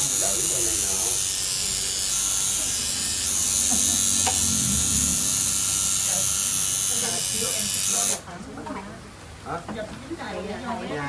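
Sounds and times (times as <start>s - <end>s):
tattoo machine buzzing: 0.0s - 8.2s.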